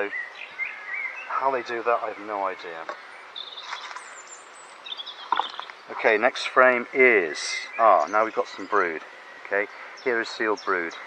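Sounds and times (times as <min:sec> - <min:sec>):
birds chirping: 0:00.0 - 0:11.0
faint outdoor hiss: 0:00.0 - 0:11.0.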